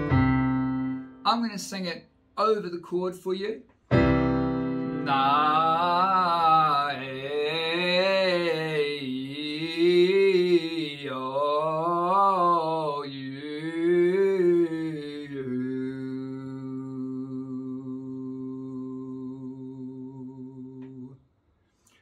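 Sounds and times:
held keyboard chord: 0.0s - 1.2s, 3.9s - 5.8s.

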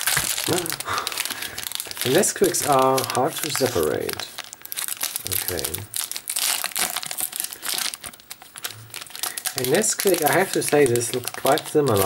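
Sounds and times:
plastic wrapper crinkling: 0.0s - 12.0s.

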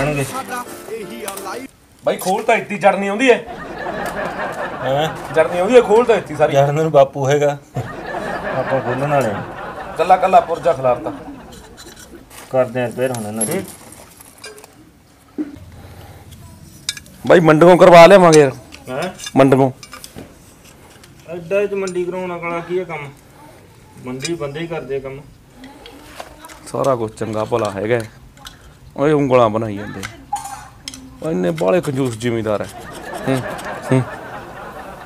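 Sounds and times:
background music: 0.0s - 1.7s
man speaking loudly: 0.0s - 3.3s.

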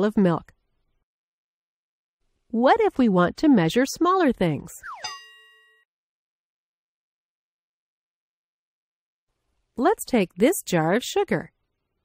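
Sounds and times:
bell-like ding: 4.8s - 5.8s.

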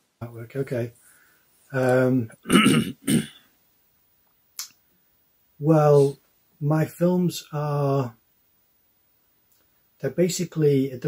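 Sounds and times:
man clearing his throat: 2.4s - 3.4s.

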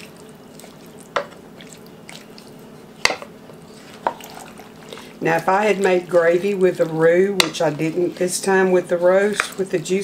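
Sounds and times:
wet squishing of stirred stew: 0.0s - 10.0s
spoon knocking on pot: 3.0s - 3.3s.

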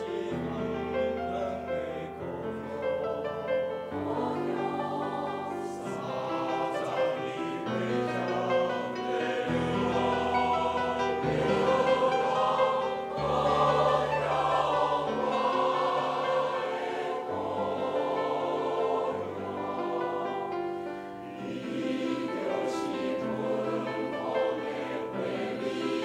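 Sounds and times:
mixed choir singing: 0.0s - 26.0s.

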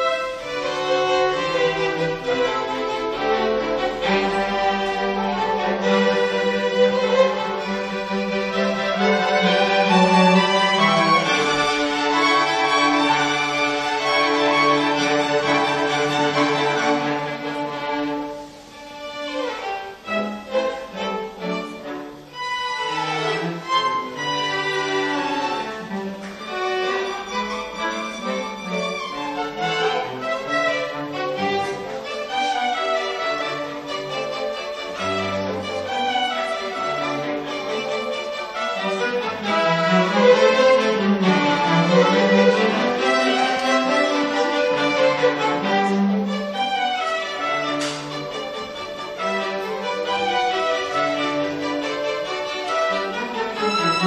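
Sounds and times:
string ensemble playing classical piece: 0.0s - 54.0s.

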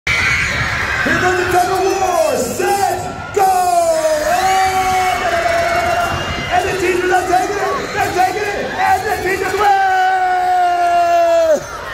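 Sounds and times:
crowd noise: 0.0s - 11.9s.

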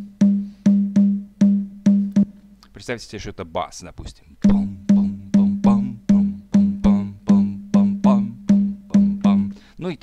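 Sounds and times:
low conga rhythm: 0.0s - 2.6s, 4.4s - 9.5s.

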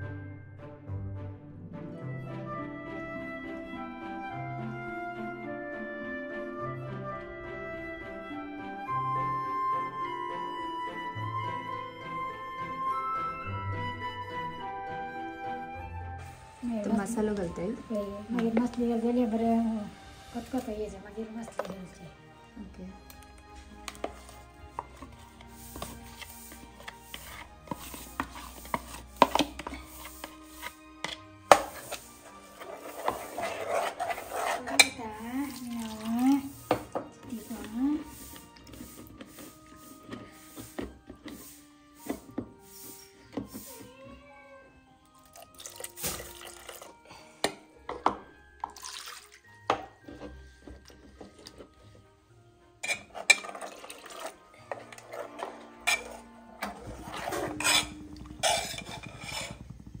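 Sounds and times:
steel ladle scraping a bowl: 23.9s - 43.9s, 52.8s - 60.0s
liquid pouring into pot: 35.4s - 36.9s, 45.2s - 47.0s, 48.6s - 49.8s, 52.8s - 56.2s.

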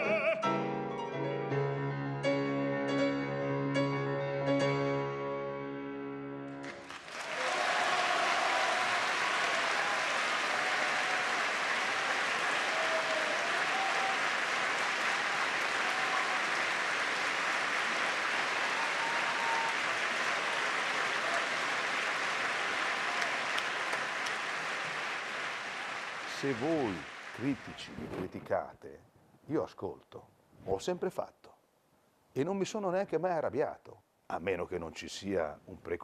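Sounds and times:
piano: 0.0s - 7.2s
audience applauding: 6.6s - 28.1s.

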